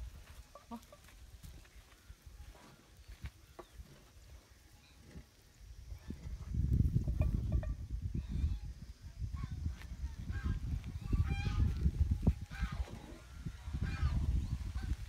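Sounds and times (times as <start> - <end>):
wind buffeting microphone: 5.0 - 15.0.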